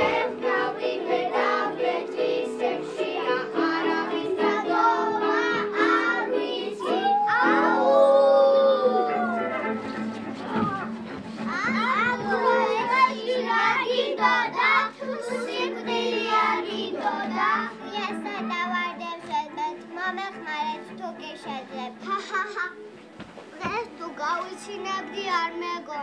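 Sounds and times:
background music: 0:00.0 - 0:26.0
children's voices: 0:00.0 - 0:26.0.

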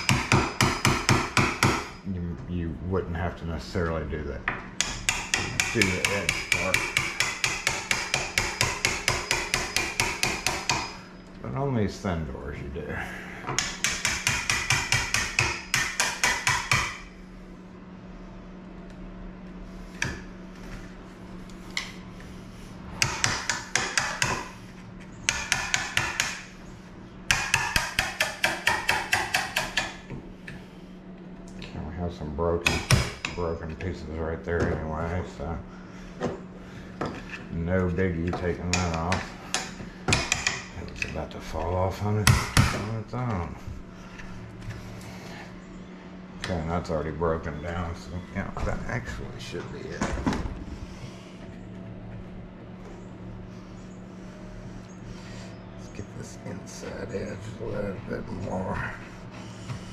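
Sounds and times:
hammer tapping chisel into wood: 0:00.0 - 0:02.0, 0:04.5 - 0:11.0, 0:13.5 - 0:17.0, 0:23.0 - 0:24.5, 0:25.3 - 0:26.5, 0:27.3 - 0:30.0, 0:32.6 - 0:33.4, 0:38.3 - 0:41.1
chisel scraping wood: 0:23.0 - 0:26.5.

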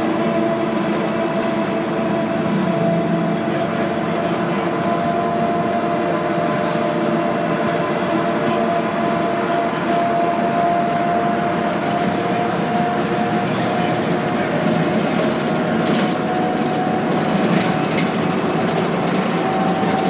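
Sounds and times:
bus engine and road drone: 0:00.0 - 0:20.0.

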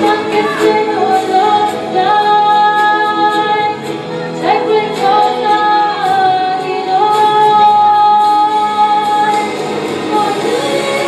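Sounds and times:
musical accompaniment: 0:00.0 - 0:11.0
woman singing: 0:00.0 - 0:11.0.

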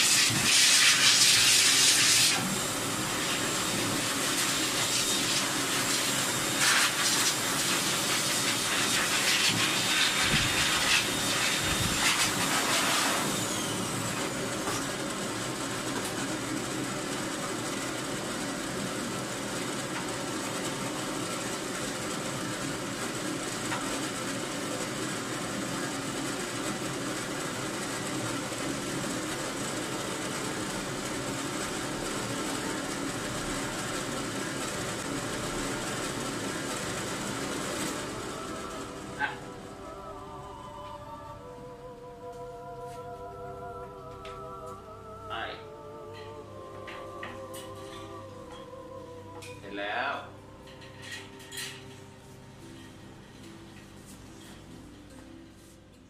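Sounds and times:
blow dryer blowing air: 0:00.0 - 0:40.0.

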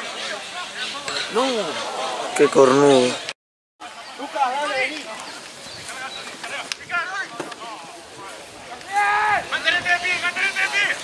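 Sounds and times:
people shouting calls: 0:00.0 - 0:03.2, 0:03.9 - 0:11.0.

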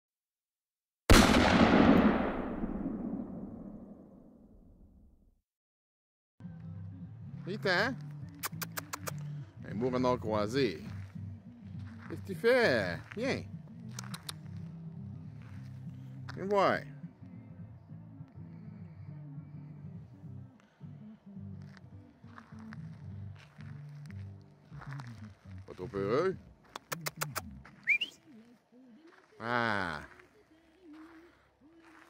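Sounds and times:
loud bang with long tail: 0:01.1 - 0:04.4.

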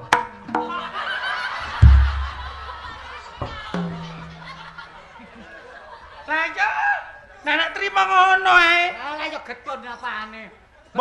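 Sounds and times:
audience laughing: 0:00.6 - 0:06.6
loud deep thump: 0:01.7 - 0:02.9.

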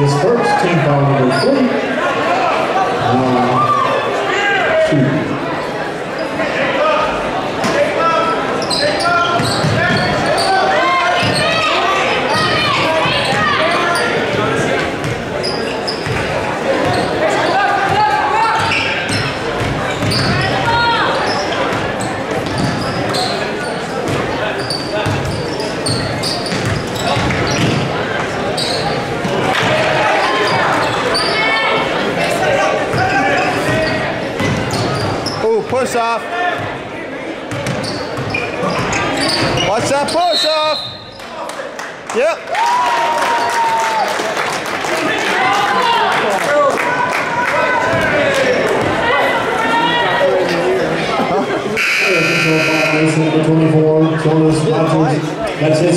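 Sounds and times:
voices echoing in hall: 0:00.0 - 0:55.9
basketball bouncing on wooden floor: 0:26.5 - 0:27.9, 0:34.4 - 0:34.8, 0:37.5 - 0:38.3.

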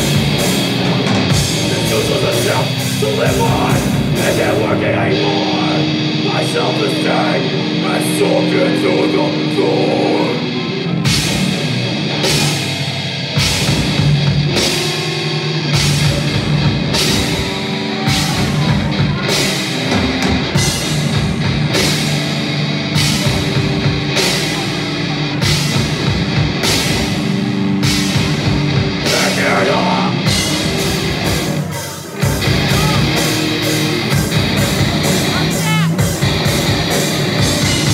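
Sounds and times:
heavy metal band playing: 0:00.0 - 0:37.9.

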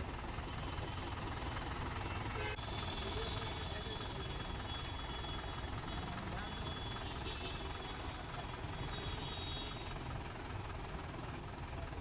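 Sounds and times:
street noise: 0:00.0 - 0:12.0
vehicle engine running: 0:00.0 - 0:12.0.

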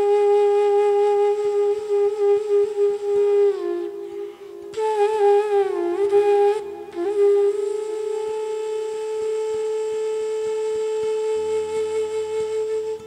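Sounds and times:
bamboo flute playing slowly: 0:00.0 - 0:13.0.

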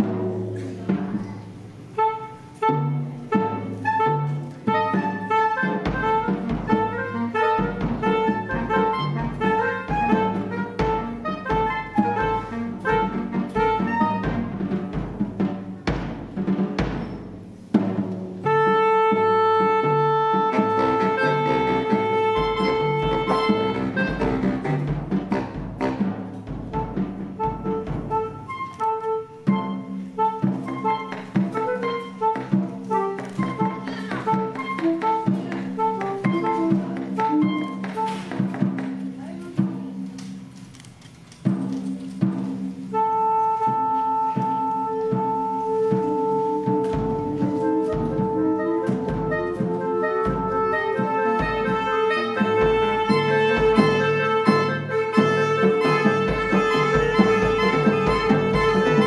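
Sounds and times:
drum kit: 0:00.0 - 0:59.0
saxophone quartet playing: 0:01.8 - 0:15.0, 0:18.4 - 0:38.6, 0:41.8 - 0:59.0.

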